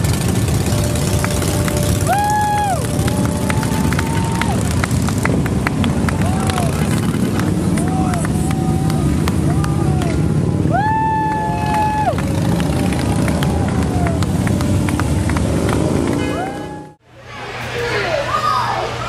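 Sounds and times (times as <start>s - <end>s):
motorcycle engines rumbling: 0.0s - 19.0s.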